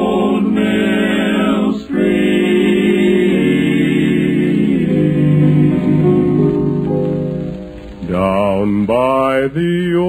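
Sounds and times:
male quartet singing in harmony: 0.0 - 6.9, 8.0 - 10.0.

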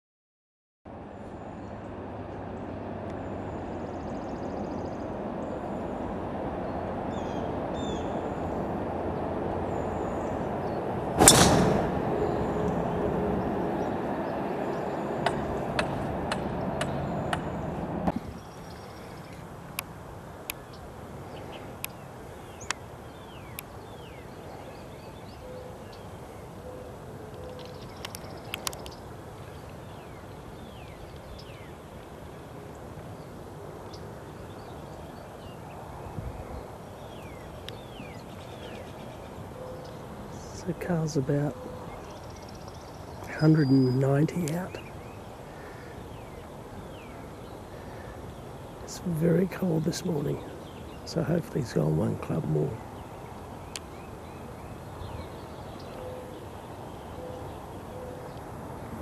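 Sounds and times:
outdoor background noise: 0.9 - 59.0
golf club striking ball: 11.2 - 12.4
bird chirps: 36.5 - 58.4.

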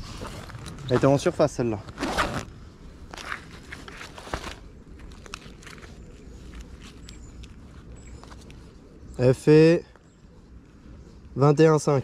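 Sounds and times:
zipper pulled open: 1.8 - 2.5.

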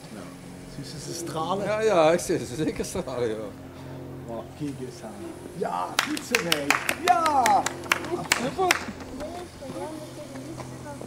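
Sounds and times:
low hum: 0.0 - 11.0
voices murmuring: 0.0 - 11.0.

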